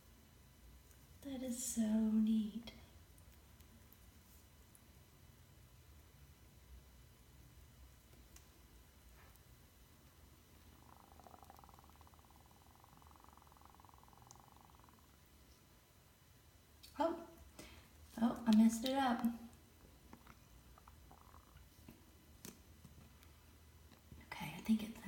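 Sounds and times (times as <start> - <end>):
faint low hum: 0.0 - 25.0.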